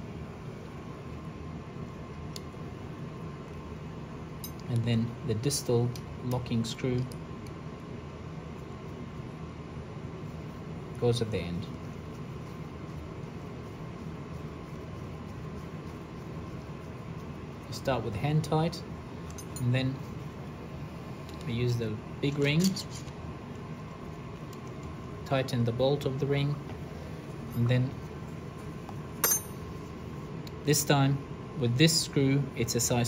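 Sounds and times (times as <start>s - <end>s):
room noise hiss: 0.0s - 33.0s
metal tool clinking on metal: 29.2s - 29.7s.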